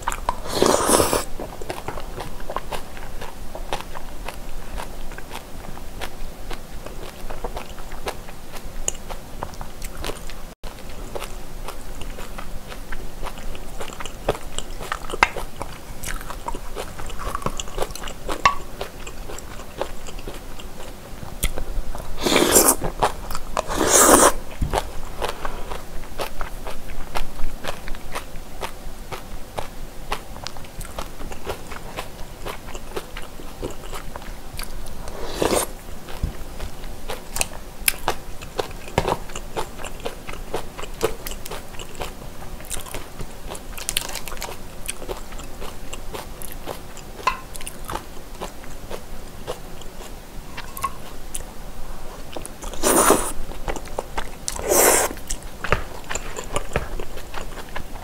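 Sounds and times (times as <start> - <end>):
slurping: 0.0 - 1.4, 22.1 - 24.4, 35.0 - 35.8, 52.6 - 53.8, 54.5 - 55.3
wet chewing with crunches: 0.0 - 58.0.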